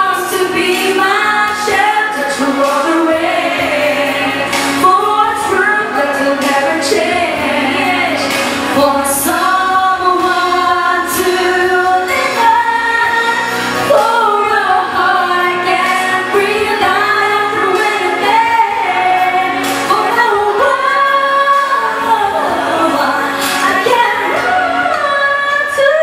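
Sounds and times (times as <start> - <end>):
person singing with accompaniment: 0.0 - 26.0.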